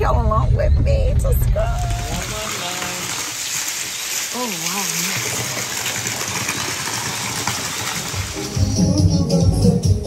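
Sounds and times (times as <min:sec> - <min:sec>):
water pouring: 0:01.6 - 0:09.1
music with strong bass beat: 0:08.3 - 0:10.0.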